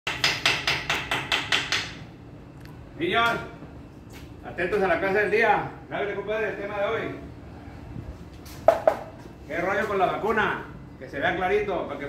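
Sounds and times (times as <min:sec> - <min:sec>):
rapid sharp knocks: 0:00.1 - 0:02.0.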